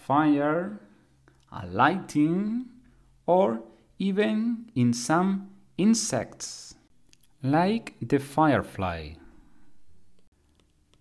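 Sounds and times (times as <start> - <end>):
narrator speaking: 0.0 - 9.4
low hum: 9.1 - 10.3.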